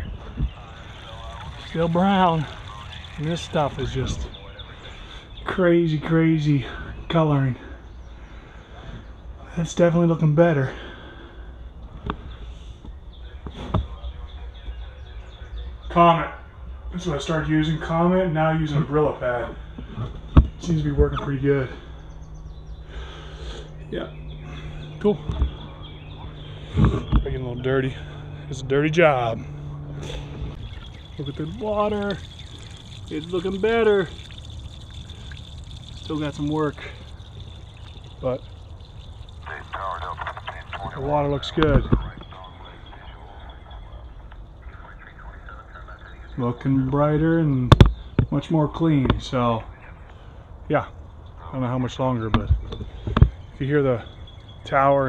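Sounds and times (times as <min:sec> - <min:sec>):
low steady rumble: 0:00.0 - 0:06.8, 0:07.6 - 0:54.8
water pouring and splashing on ground: 0:00.8 - 0:04.2, 0:30.6 - 0:41.0
faint bird chirps: 0:29.4 - 0:46.9.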